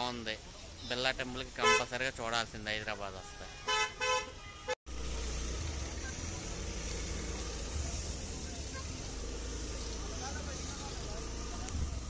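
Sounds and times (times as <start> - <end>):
road traffic rumble: 0.0 - 12.0
vehicle horn toot: 1.6 - 1.9, 3.2 - 4.8.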